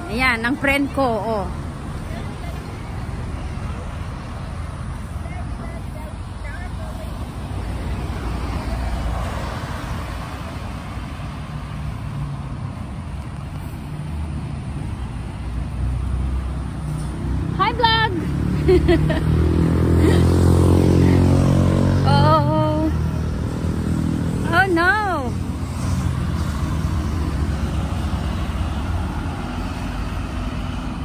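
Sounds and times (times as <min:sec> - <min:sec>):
rumble of cars: 0:00.0 - 0:31.0
vehicle passing: 0:00.0 - 0:31.0.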